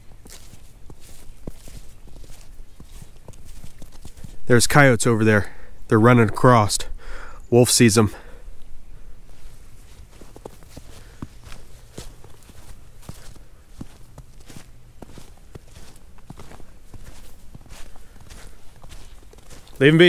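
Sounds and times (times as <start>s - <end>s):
footsteps crunching in snow: 0.0s - 5.0s, 9.0s - 20.0s.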